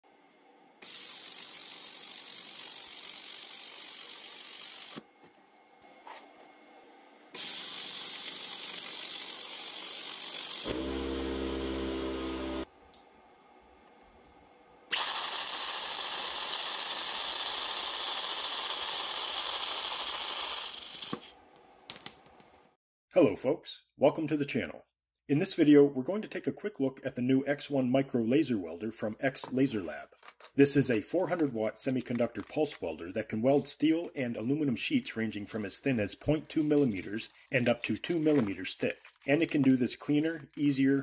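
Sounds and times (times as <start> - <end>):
low buzzing tone: 10.7 - 12.7.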